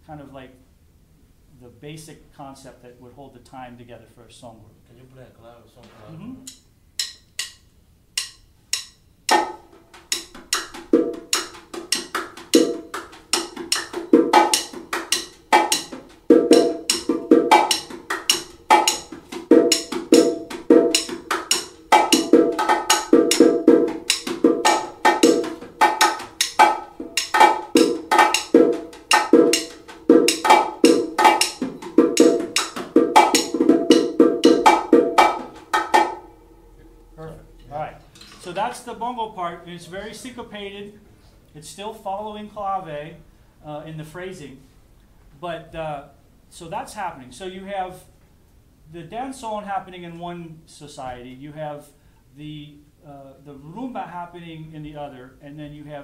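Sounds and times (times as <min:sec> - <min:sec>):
bongos playing: 0:06.4 - 0:37.6.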